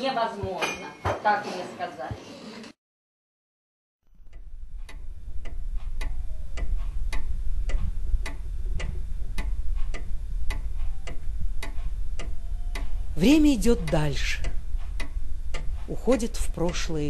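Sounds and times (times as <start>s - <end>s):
low steady hum: 4.1s - 17.0s
wristwatch ticking: 4.3s - 17.0s.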